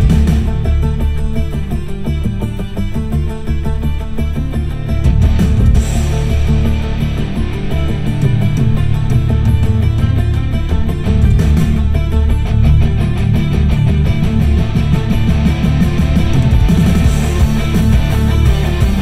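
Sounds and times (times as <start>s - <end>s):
rock music with electric guitar: 0.0s - 19.0s.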